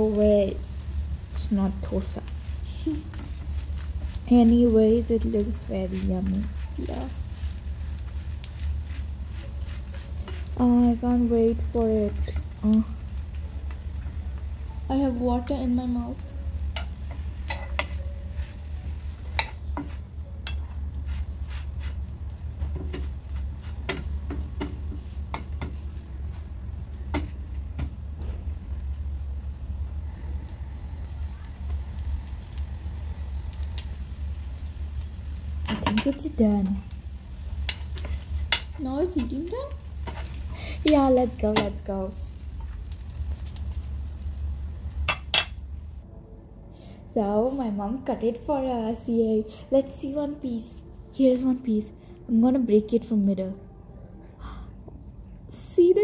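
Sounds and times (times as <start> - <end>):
flatbread sizzling on a griddle: 0.0 - 46.0
steady low hum: 0.0 - 55.8
spatula knocking and scraping pan: 5.4 - 10.6, 16.8 - 18.6, 19.2 - 22.0, 22.6 - 26.5, 27.1 - 28.0, 35.6 - 36.4, 40.0 - 41.8
utensils knocking against pan: 23.8 - 25.8, 35.7 - 36.2.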